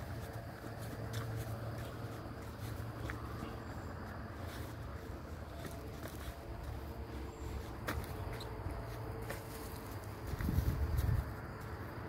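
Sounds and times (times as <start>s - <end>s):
wind noise on microphone: 10.2s - 11.4s.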